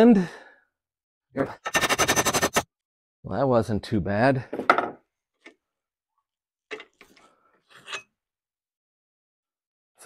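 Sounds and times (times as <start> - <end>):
metal bracket scrapes and clunks: 6.7 - 8.1.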